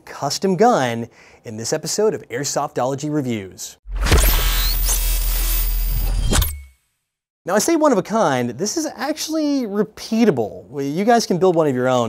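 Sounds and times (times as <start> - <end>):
static-like glitch noise: 4.0 - 6.6.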